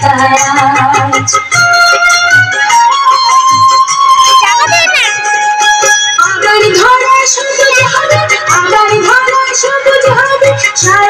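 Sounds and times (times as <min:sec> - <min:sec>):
dance music: 0:04.4 - 0:05.3.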